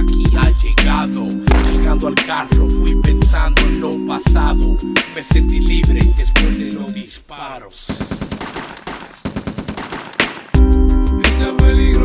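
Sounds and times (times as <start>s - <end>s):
rapid automatic gunfire: 7.9s - 10.6s.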